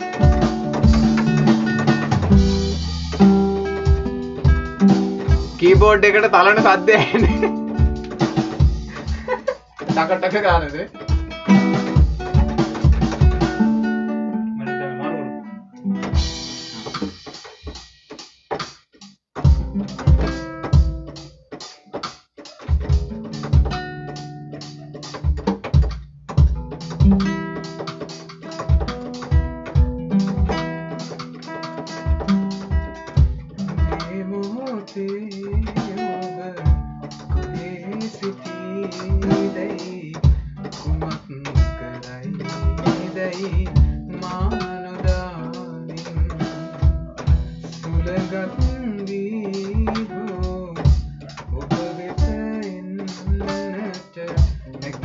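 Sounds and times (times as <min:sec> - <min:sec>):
steady drum beat: 0:00.0 - 0:14.0, 0:16.0 - 0:55.0
keyboard: 0:00.0 - 0:17.1, 0:19.4 - 0:55.0
acoustic guitar: 0:00.0 - 0:55.0.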